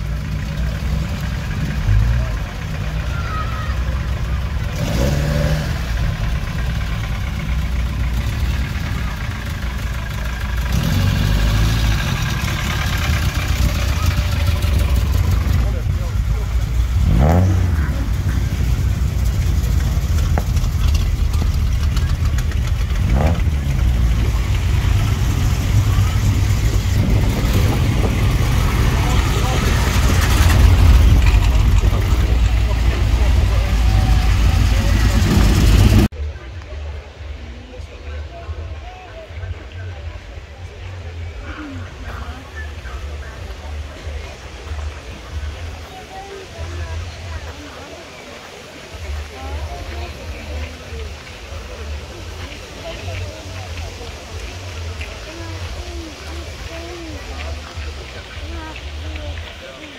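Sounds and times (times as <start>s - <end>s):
car engine revving: 0.0s - 36.1s
car driving up close: 0.0s - 36.2s
car engines rumbling: 0.0s - 59.9s
crowd voices: 0.0s - 59.9s.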